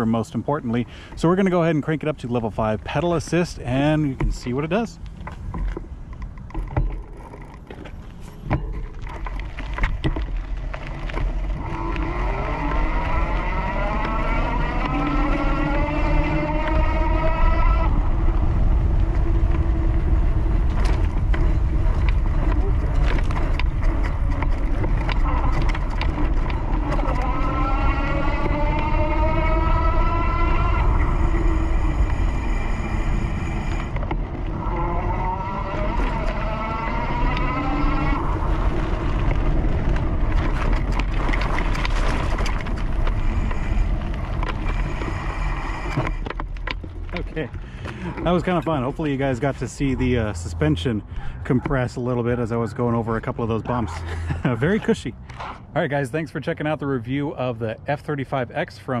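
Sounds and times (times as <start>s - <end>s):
electric hub motor whining: 0.0s - 51.0s
tyres rolling rumble: 0.0s - 59.0s
wind on microphone: 2.2s - 48.9s.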